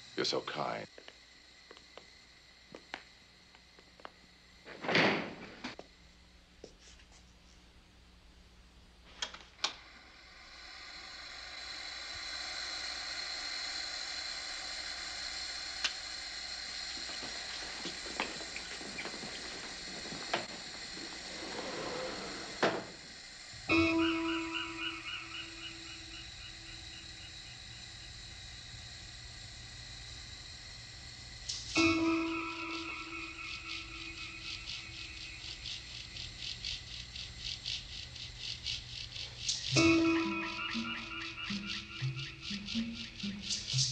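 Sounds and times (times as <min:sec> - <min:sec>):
freezer hiss with high whine: 0:00.0 - 0:43.9
held music chord: 0:23.6 - 0:25.9, 0:31.8 - 0:34.4, 0:39.8 - 0:43.4.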